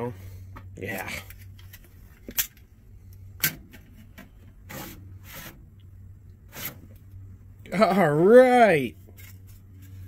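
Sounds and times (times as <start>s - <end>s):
steady low hum: 0.0s - 10.0s
metal caddy sliding scrape: 3.9s - 5.6s, 6.5s - 7.0s.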